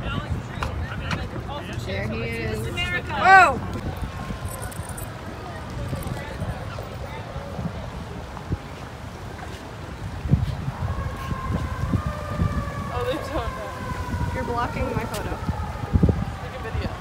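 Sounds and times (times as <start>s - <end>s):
faint voices: 0.0s - 17.0s
low traffic rumble: 0.0s - 17.0s
wind on microphone: 0.0s - 17.0s.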